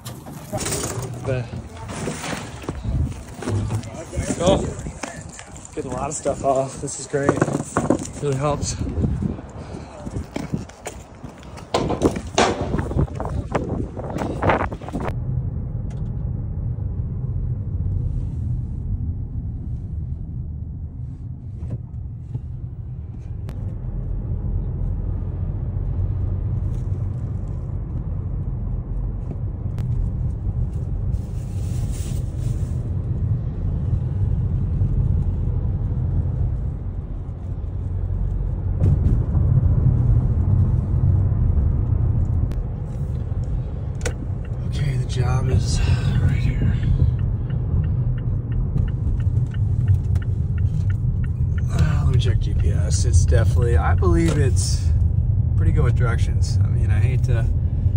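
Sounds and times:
car engine and tyre rumble: 0:00.0 - 0:57.9
sharp knocks: 0:11.7 - 0:13.1.

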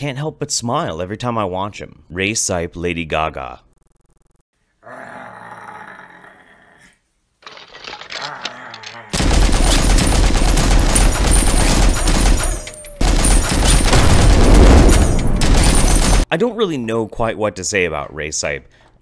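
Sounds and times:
machine-gun firing: 0:09.1 - 0:16.3.

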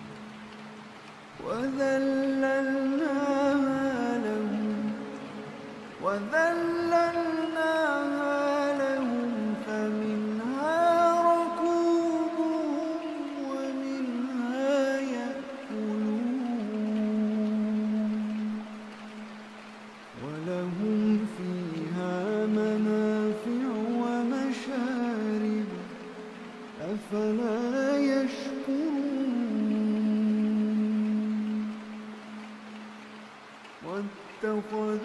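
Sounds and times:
faint hiss: 0:00.0 - 0:35.0
man chanting: 0:01.4 - 0:05.3, 0:06.0 - 0:18.6, 0:20.2 - 0:26.1, 0:26.8 - 0:31.8, 0:33.8 - 0:35.0
man reciting melodically: 0:01.4 - 0:18.8, 0:20.2 - 0:32.5, 0:33.8 - 0:35.0.

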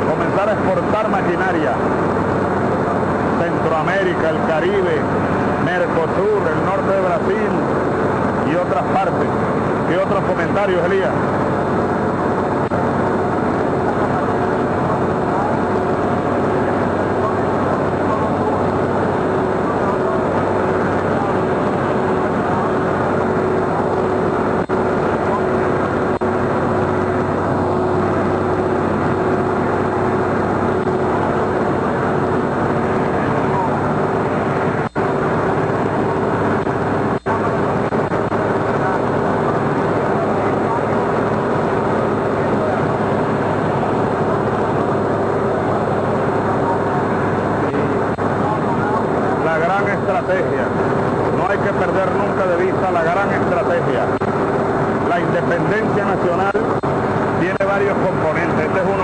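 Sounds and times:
constant steady tone: 0:00.0 - 0:59.0
vehicle engine running: 0:00.0 - 0:59.0.

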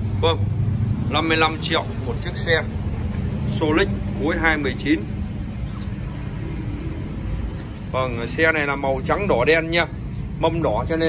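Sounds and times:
motor vehicle rumble: 0:00.0 - 0:11.0.

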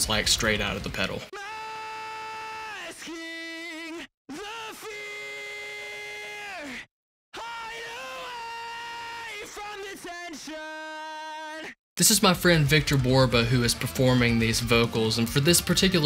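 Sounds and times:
distorted singing voice: 0:01.4 - 0:06.8.

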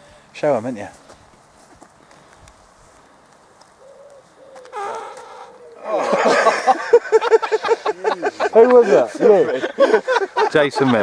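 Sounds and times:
pigeon cooing: 0:03.8 - 0:06.4.

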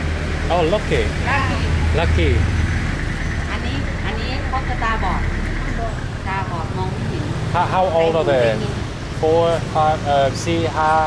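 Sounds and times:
vehicle engine running: 0:00.0 - 0:11.0
people talking: 0:00.4 - 0:02.5, 0:03.4 - 0:11.0.

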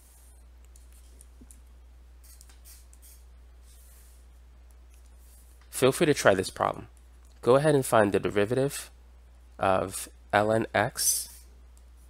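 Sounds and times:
low steady hum: 0:00.0 - 0:12.0
stylus clicking and scratching: 0:00.6 - 0:03.2.

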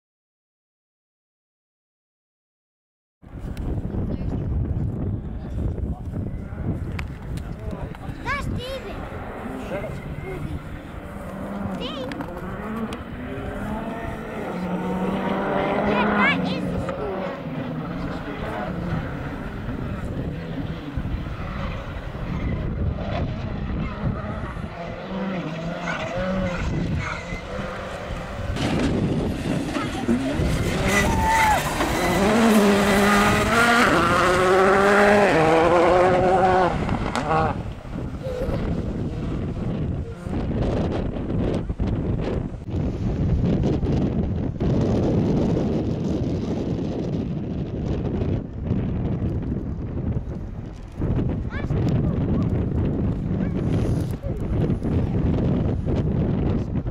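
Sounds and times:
rally car engine revving past: 0:09.0 - 0:41.5.

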